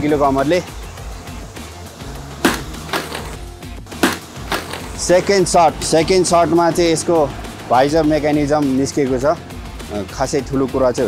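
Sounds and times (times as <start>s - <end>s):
background music: 0.0s - 11.0s
sledgehammer cracking helmet: 2.4s - 3.4s, 4.0s - 4.9s.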